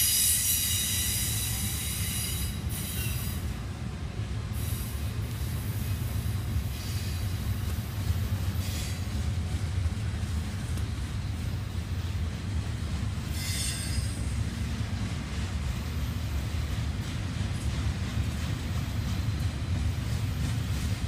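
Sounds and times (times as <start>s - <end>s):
freight train rolling rumble: 0.0s - 21.0s
high wheel squeals: 13.3s - 14.3s.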